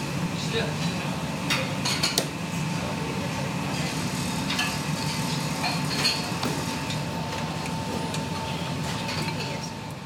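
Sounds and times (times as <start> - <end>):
low kitchen hum: 0.0 - 10.0.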